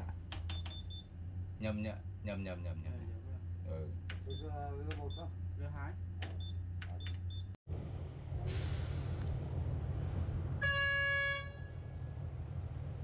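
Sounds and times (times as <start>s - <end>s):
horn blast: 10.6s - 12.0s.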